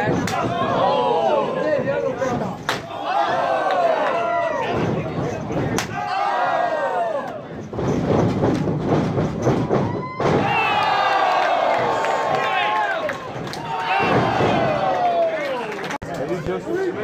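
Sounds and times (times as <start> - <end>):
crowd shouting and cheering: 0.0 - 7.6, 9.6 - 17.0.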